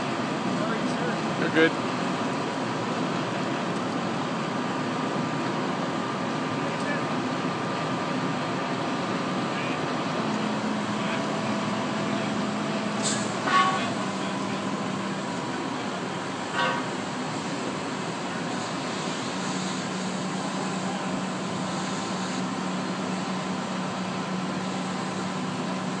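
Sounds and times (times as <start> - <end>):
fire engine pump running: 0.0 - 26.0
water hissing from fire hose: 10.1 - 26.0.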